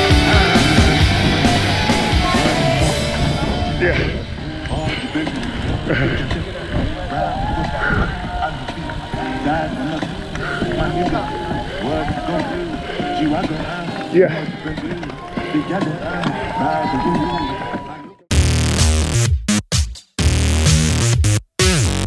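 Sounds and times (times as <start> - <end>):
indistinct chatter of cyclists: 0.0 - 18.3
wind rushing over microphone: 0.2 - 17.7.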